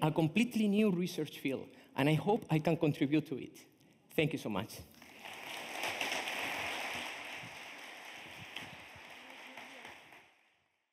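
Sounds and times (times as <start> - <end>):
audience applause: 5.0 - 10.6.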